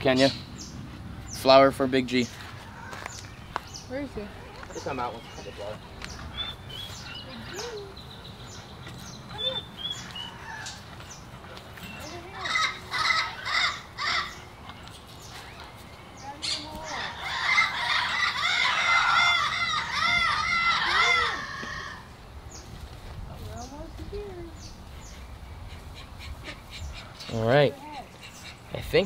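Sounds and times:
high animal calls: 12.3s - 14.5s, 16.4s - 22.1s.

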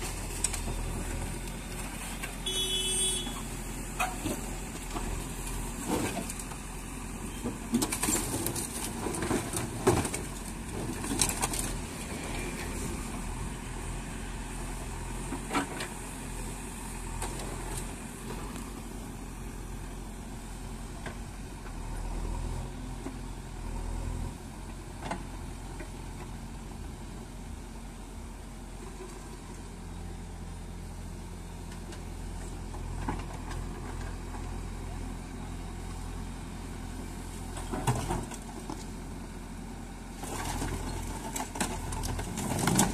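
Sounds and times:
diesel engine running: 0.0s - 42.9s.

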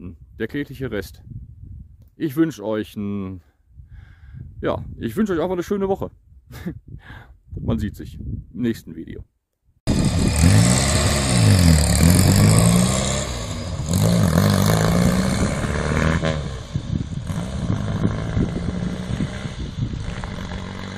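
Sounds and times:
car engine accelerating: 9.9s - 20.9s.

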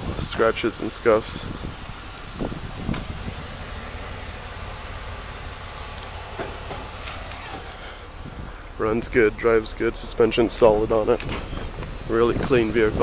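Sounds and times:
outdoor hiss: 0.0s - 13.0s
low rumble: 1.4s - 13.0s.

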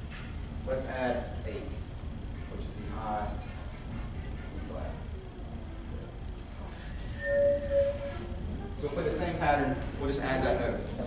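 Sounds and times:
wind instrument note: 7.1s - 8.4s.

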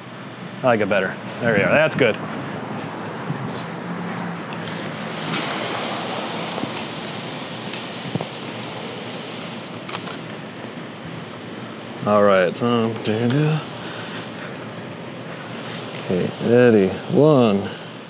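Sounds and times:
distant traffic: 0.0s - 18.0s
wind: 0.0s - 18.0s.

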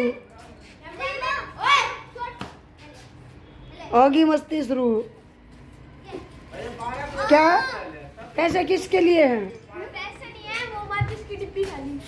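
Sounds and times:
children's excited exclamations: 0.9s - 2.5s.

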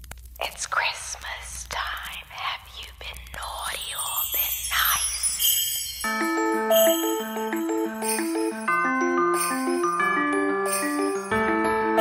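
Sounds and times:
person whispering: 0.4s - 5.6s.

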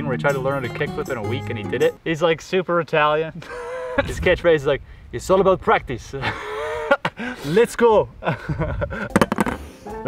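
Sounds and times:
man laughing: 3.4s - 4.2s, 6.2s - 7.6s, 8.2s - 9.2s
wind rumbling on microphone: 4.0s - 6.0s.

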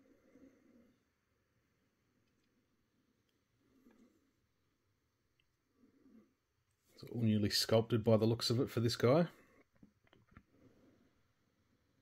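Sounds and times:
soft handling sound and click: 9.5s - 10.5s.

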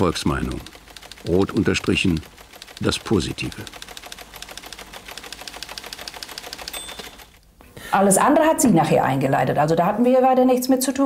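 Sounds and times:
teleprinter clattering: 0.0s - 7.4s.

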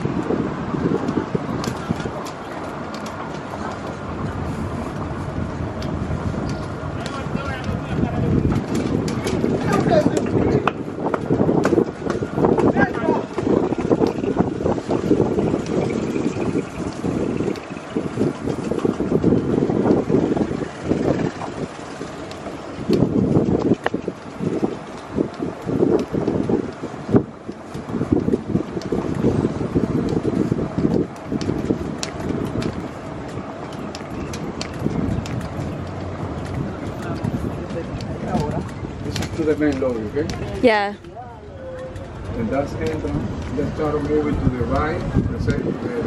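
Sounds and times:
cart knocks and rattles: 0.0s - 40.7s, 41.7s - 46.0s
wind buffeting microphone: 0.0s - 46.0s.

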